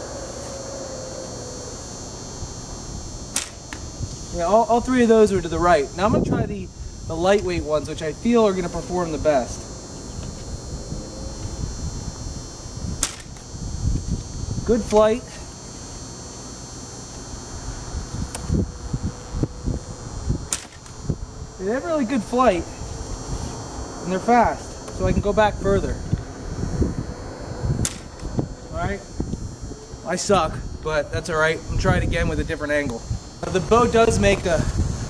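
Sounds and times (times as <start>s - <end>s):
wind buffeting microphone: 0.0s - 15.2s, 17.3s - 35.0s
bow clicking on the draw: 3.3s - 3.9s
bowstring snapping: 3.3s - 3.9s, 13.0s - 13.5s, 20.5s - 21.0s, 27.8s - 28.3s.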